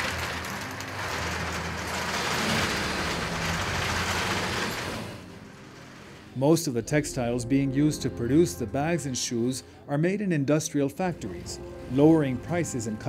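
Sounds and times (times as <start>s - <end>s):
yarn-winding machinery whirring: 0.0s - 7.2s, 11.2s - 13.0s.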